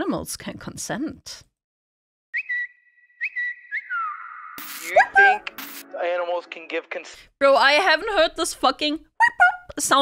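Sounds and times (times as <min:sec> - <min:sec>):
person whistling sliding notes: 0:02.4 - 0:04.5.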